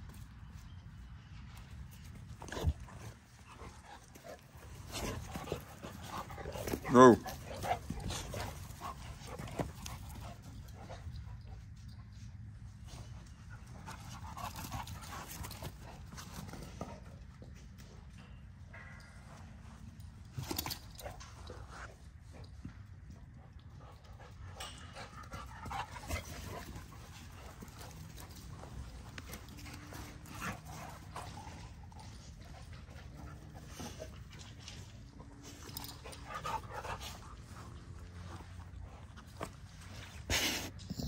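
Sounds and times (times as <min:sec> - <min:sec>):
dogs panting: 0:02.0 - 0:17.8, 0:19.2 - 0:41.0.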